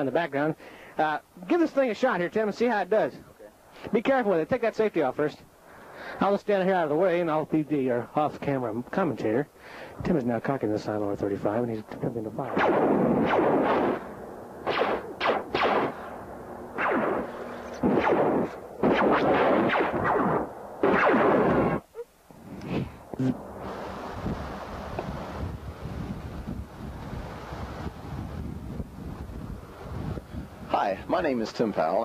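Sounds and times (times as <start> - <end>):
distant highway traffic: 0.0 - 32.0
wind hiss: 0.0 - 32.0
laser gun shots: 12.4 - 16.1, 16.8 - 21.8.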